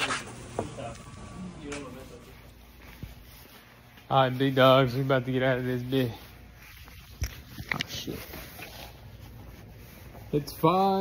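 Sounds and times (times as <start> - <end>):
low room hum: 0.0 - 11.0
rustling against jacket: 1.9 - 11.0.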